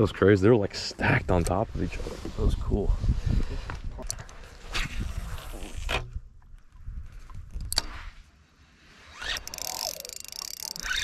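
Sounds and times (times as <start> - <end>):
fishing reel gears whirring: 9.1 - 11.0.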